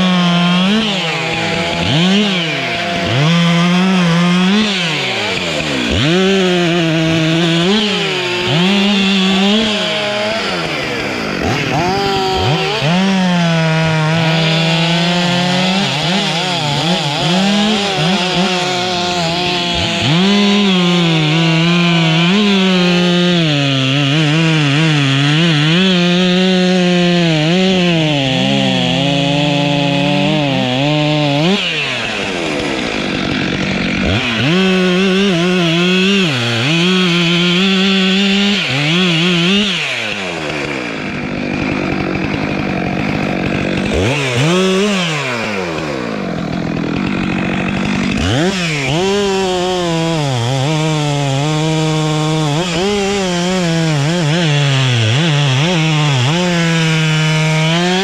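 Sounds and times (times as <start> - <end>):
chainsaw cutting wood: 0.0 - 58.0.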